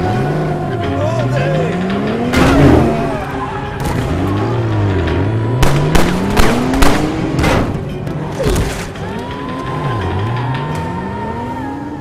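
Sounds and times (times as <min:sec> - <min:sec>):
car engine accelerating: 0:00.0 - 0:12.0
film score: 0:00.0 - 0:12.0
sharp bangs: 0:01.9 - 0:09.0.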